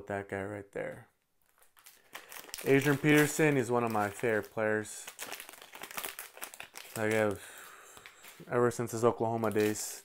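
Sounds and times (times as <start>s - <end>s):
plastic wrapper crinkling: 1.2s - 10.0s.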